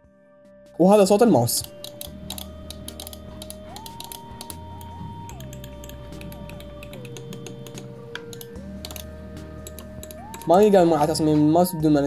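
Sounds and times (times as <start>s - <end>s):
mouse buttons clicking: 1.6s - 10.6s.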